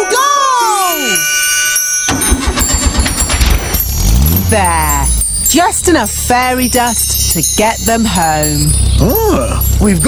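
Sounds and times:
cartoon car engine chugging: 2.1s - 10.0s.

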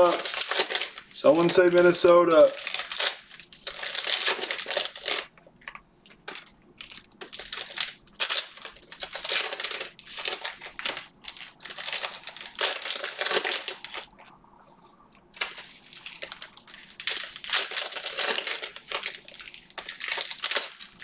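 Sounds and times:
cellophane wrappers crinkling: 0.0s - 14.2s, 15.3s - 21.0s.

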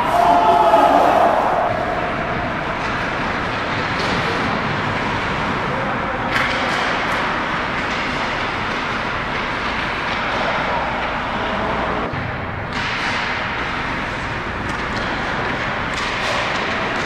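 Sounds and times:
stick or puck clacks: 6.3s - 11.2s, 12.6s - 17.0s.

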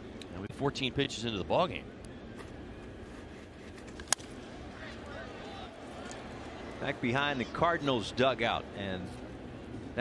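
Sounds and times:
ballpark background noise: 0.0s - 10.0s
baseball bat crack: 3.9s - 5.0s.

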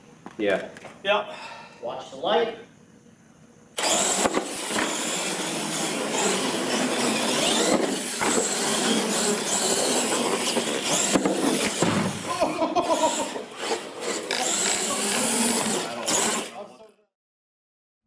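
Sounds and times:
toy truck motors whining: 3.8s - 16.7s.

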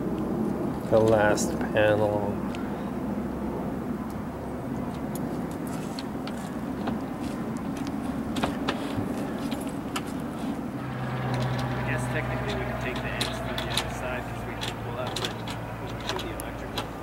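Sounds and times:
distant traffic rumble: 0.0s - 17.0s
light clicks and knocks: 12.8s - 17.0s.

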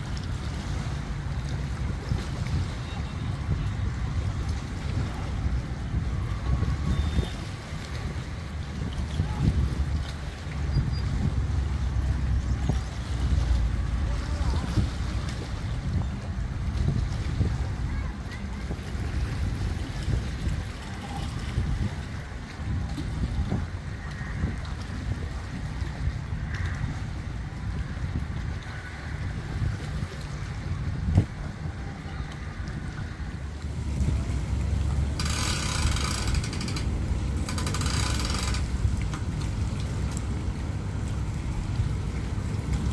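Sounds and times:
wind buffeting microphone: 0.0s - 42.9s
distant voices: 17.0s - 42.9s.

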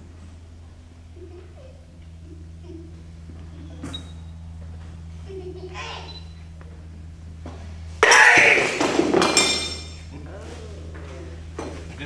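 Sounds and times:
glass ringing: 9.2s - 10.0s.

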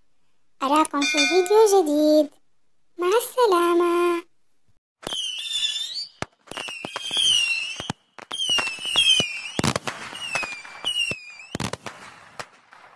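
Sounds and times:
descending firework whistles: 5.0s - 12.9s
firework bangs: 5.0s - 12.9s
sharp cracks: 6.2s - 12.9s.

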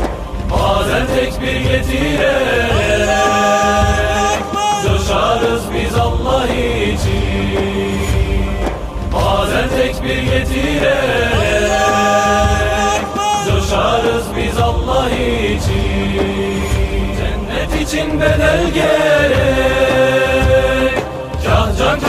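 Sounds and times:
musical backing: 0.0s - 22.0s
voices chanting devotional song: 0.0s - 22.0s.

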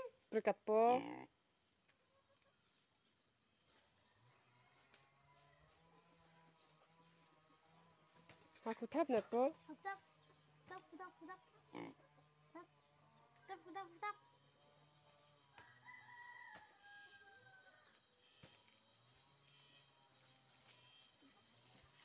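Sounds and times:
rooster crowing faintly: 4.0s - 6.2s.

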